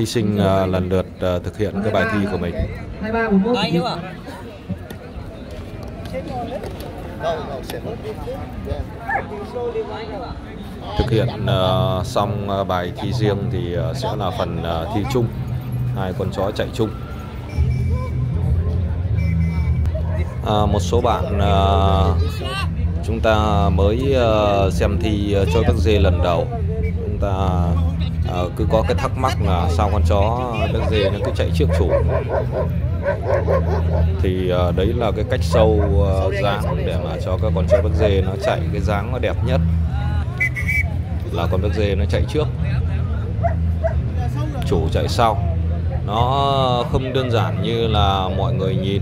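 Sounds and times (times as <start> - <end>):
people talking: 0.0 - 15.4, 19.6 - 32.6, 33.5 - 43.3, 44.1 - 49.0
dog yipping: 30.6 - 34.1, 43.4 - 44.0.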